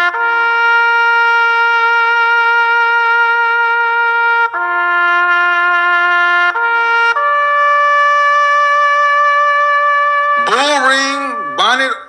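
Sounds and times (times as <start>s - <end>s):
trumpet holding a long note: 0.0s - 12.0s.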